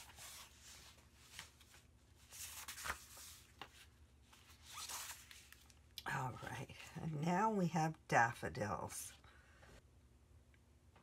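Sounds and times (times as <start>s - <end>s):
paper rustling: 0.0s - 5.8s.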